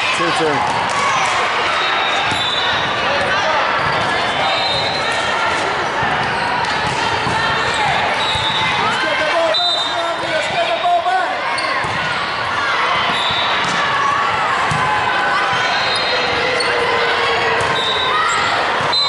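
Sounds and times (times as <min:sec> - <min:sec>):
sneakers squeaking: 0:01.7 - 0:13.9, 0:14.6 - 0:19.0
volleyballs struck and bouncing: 0:02.2 - 0:08.9, 0:11.6 - 0:16.6.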